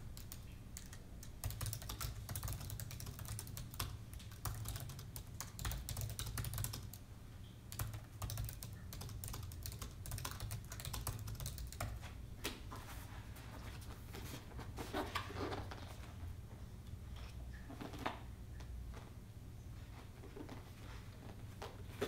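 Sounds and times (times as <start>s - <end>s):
laptop keyboard typing: 0.0s - 7.0s, 7.7s - 12.0s
low steady hum: 0.0s - 22.0s.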